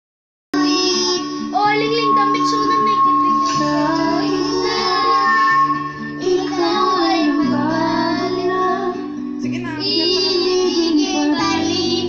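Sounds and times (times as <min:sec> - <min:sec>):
toddler singing into microphone: 0:00.6 - 0:09.2, 0:09.8 - 0:12.0
electronic karaoke backing track: 0:00.6 - 0:12.0.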